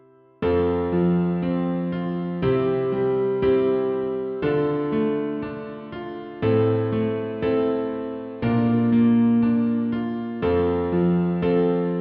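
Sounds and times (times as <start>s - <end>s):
solo piano chords: 0.0s - 12.0s.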